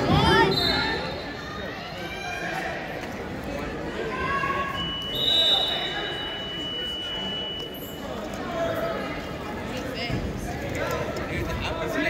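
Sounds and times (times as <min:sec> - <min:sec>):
coaches and spectators shouting: 0:00.0 - 0:09.3.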